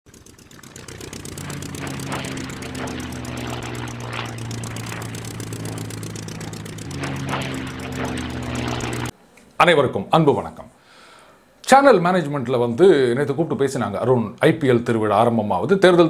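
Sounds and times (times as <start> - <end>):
propeller plane engine drone: 0.0 - 9.1.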